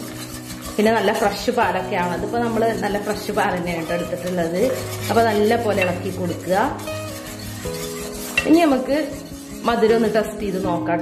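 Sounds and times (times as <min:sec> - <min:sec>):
background music: 0:00.0 - 0:11.0
wire whisk scraping a pot: 0:00.0 - 0:11.0.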